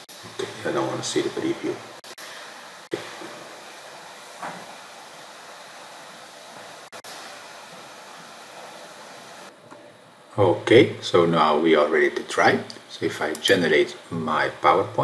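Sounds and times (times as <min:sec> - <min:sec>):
microphone hiss: 0:00.0 - 0:15.0.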